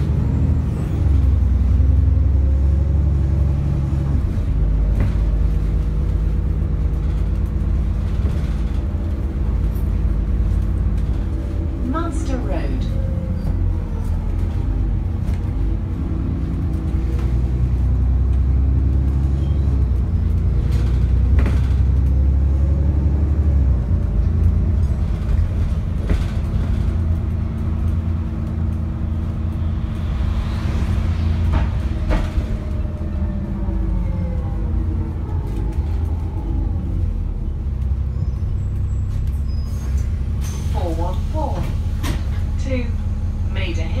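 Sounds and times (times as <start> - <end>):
bus diesel engine rumble: 0.0 - 44.0
body knocks and rattles: 24.8 - 27.9.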